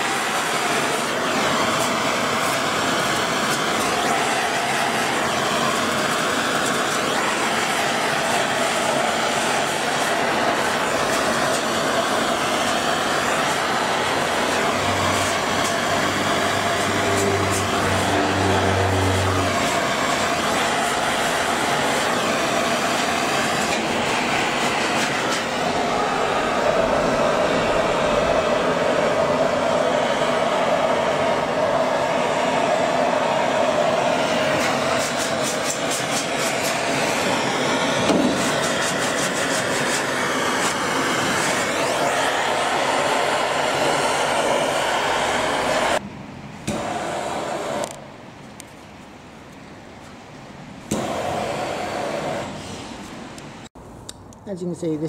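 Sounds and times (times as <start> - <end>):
blowtorch flame hissing: 0.0 - 46.0, 46.6 - 48.1, 50.8 - 53.8.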